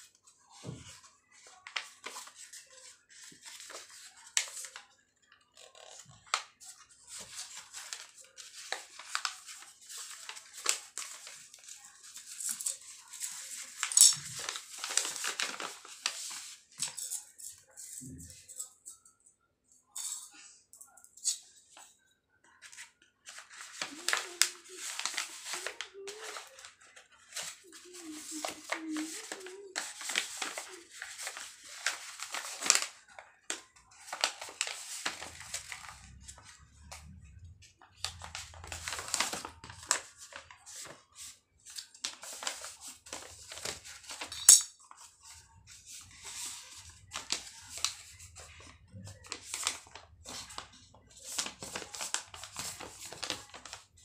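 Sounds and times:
paper rustling and crinkling: 0.0 - 18.7, 22.5 - 54.0.

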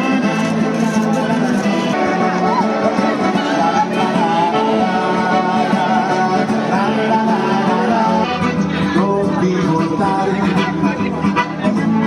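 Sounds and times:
accordion and strings folk tune: 0.0 - 12.0.

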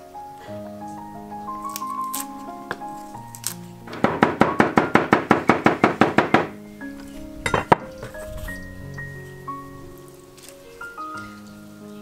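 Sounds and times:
background music: 0.0 - 12.0
cleaver chopping on wooden block: 3.9 - 6.5.

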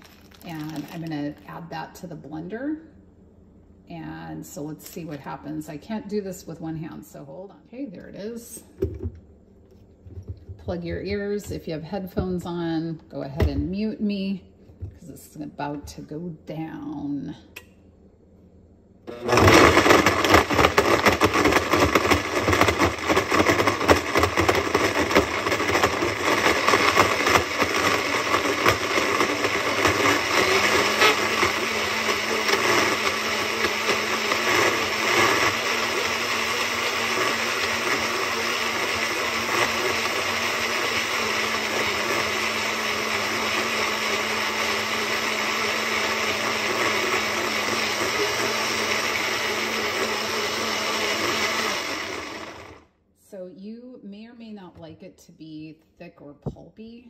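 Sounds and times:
blender running: 0.0 - 1.0, 19.1 - 53.0
frozen pieces knocking in blender: 19.3 - 38.2.

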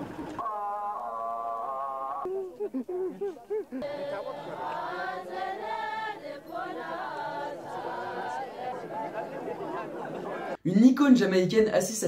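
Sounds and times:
group singing a chant: 3.8 - 10.6.

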